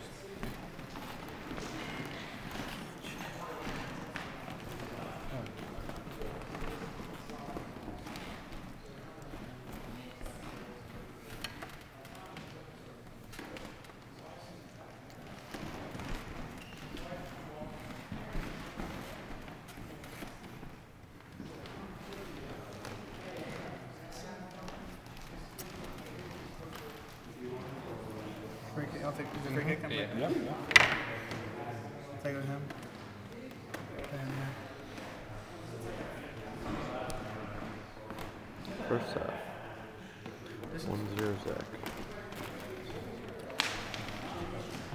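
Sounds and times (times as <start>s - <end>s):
murmur of voices: 0.0s - 44.9s.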